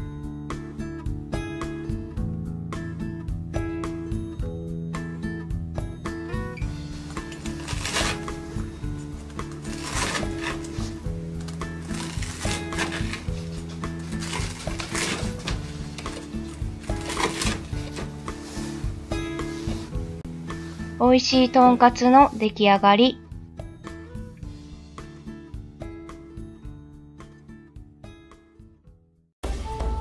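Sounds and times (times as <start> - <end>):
background music: 0.0 - 30.0
knife crunching through fried cutlet: 9.1 - 10.9.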